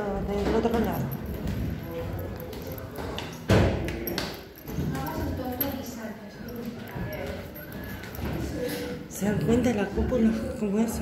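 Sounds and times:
footsteps going down stairs: 0:00.0 - 0:08.6
faint voices: 0:00.0 - 0:11.0.

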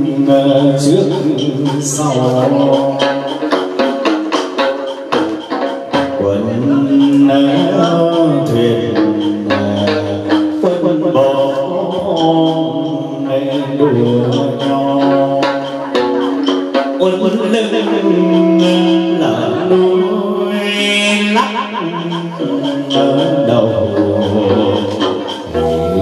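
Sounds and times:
plucked lute melody: 0:00.0 - 0:26.0
sustained pitched tones: 0:00.0 - 0:26.0
wooden clapper strikes: 0:00.0 - 0:26.0.

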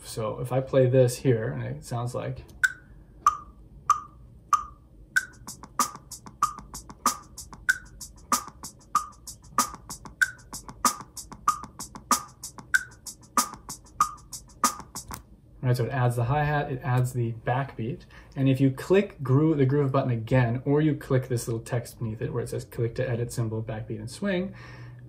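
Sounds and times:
drum machine groove: 0:02.6 - 0:15.2.

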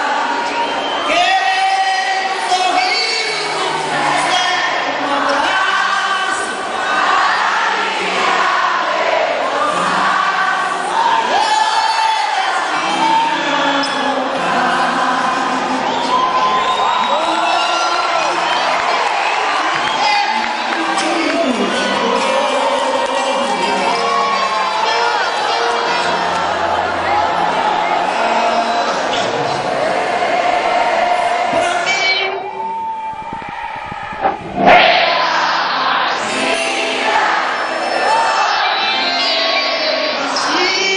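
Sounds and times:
voices singing long notes: 0:00.0 - 0:32.7, 0:33.3 - 0:40.9
audience cheering: 0:00.0 - 0:40.9
concert music: 0:00.0 - 0:40.9
crowd noise: 0:00.0 - 0:40.9
live band music: 0:19.8 - 0:30.4.

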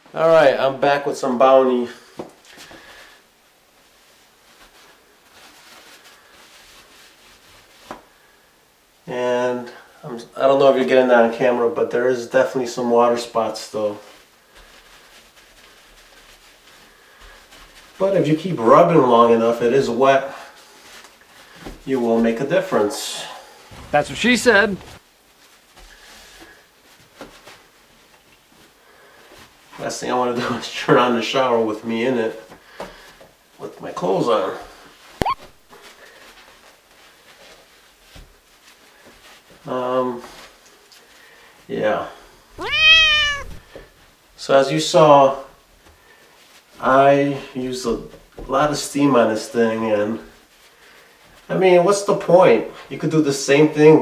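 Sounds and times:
high-pitched call: 0:35.2 - 0:35.5.

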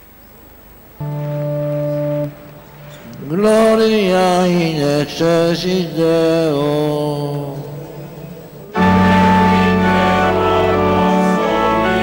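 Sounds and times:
organ low note: 0:08.7 - 0:12.0.

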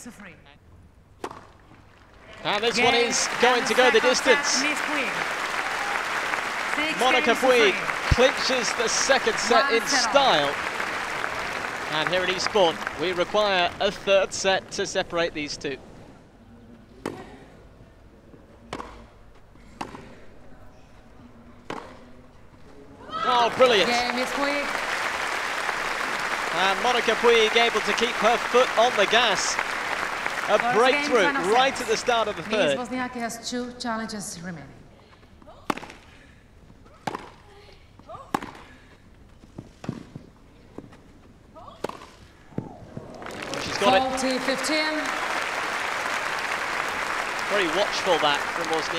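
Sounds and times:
quiet crowd ambience: 0:00.0 - 0:48.9
tennis ball bouncing: 0:01.2 - 0:01.6, 0:18.7 - 0:19.1, 0:19.8 - 0:20.1, 0:21.6 - 0:22.0, 0:37.0 - 0:37.4, 0:38.3 - 0:38.6, 0:41.8 - 0:43.1
tennis ball strikes: 0:18.7 - 0:19.1, 0:19.8 - 0:20.0, 0:21.6 - 0:22.0, 0:35.7 - 0:36.0, 0:37.0 - 0:37.4, 0:38.3 - 0:38.6.

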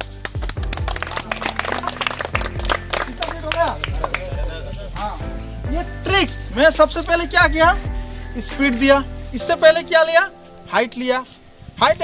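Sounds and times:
people clapping: 0:00.0 - 0:05.2
background music with steady beat: 0:00.0 - 0:11.8.

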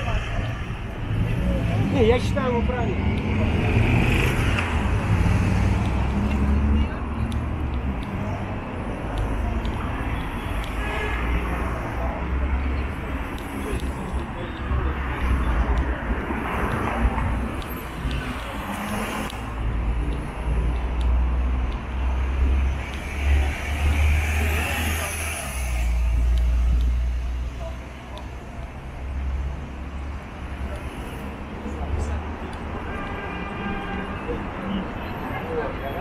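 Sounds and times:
car traffic rumble: 0:00.0 - 0:36.0
passersby talking: 0:00.0 - 0:36.0.

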